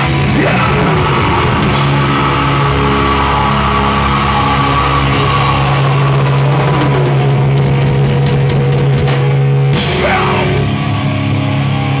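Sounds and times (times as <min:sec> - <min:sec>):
drum and cymbal hits: 0:00.0 - 0:11.1
distorted guitar and bass chord: 0:00.0 - 0:12.0.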